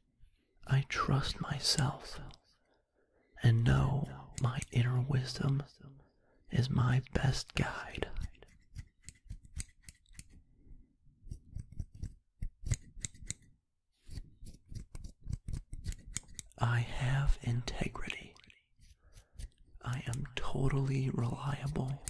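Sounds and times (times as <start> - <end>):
scissors snipping: 8.2 - 10.4, 11.3 - 13.5, 14.1 - 16.6.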